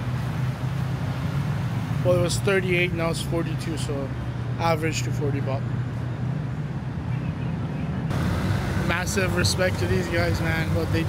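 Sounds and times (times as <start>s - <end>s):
low rumble of vehicle engines: 0.0s - 11.0s
traffic hiss: 8.1s - 11.0s.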